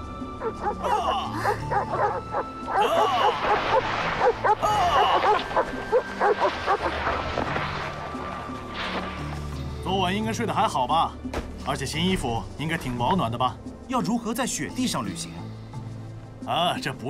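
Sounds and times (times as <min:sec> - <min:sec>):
sled dogs barking and yipping: 0:00.0 - 0:09.4
background music: 0:00.0 - 0:17.0.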